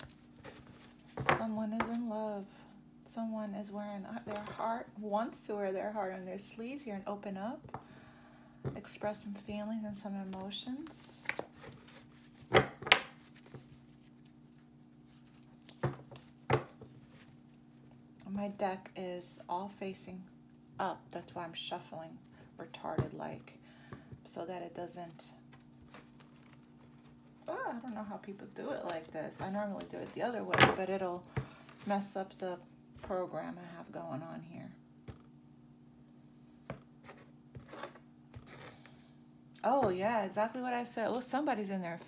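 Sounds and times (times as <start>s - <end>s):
low steady hum: 0.0s - 42.0s.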